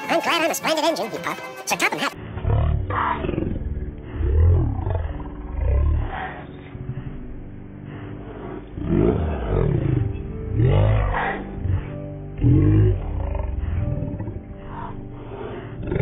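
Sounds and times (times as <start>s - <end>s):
muffled roar rising and falling: 2.4s - 16.0s.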